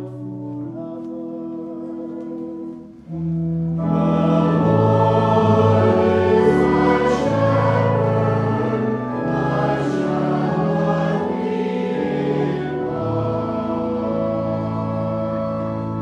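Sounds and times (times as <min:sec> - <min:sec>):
church organ chords: 0:00.0 - 0:16.0
group of voices singing: 0:03.8 - 0:16.0.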